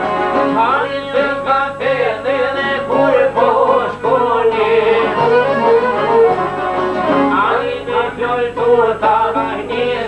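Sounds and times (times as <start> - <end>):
plucked lutes playing folk tune: 0.0 - 10.0
man singing: 0.3 - 6.0, 7.1 - 10.0.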